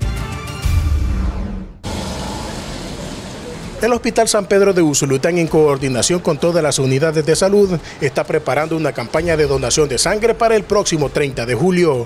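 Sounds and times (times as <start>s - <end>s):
news theme music sting: 0.5s - 4.8s
street traffic hum: 1.8s - 12.0s.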